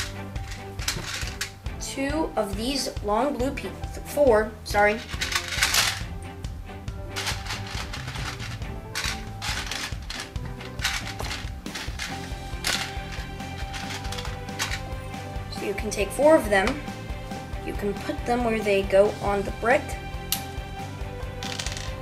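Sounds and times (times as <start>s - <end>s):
plastic pieces clattering: 0.0s - 1.6s, 5.0s - 6.1s, 7.2s - 15.0s, 21.4s - 22.0s
background music: 0.0s - 22.0s.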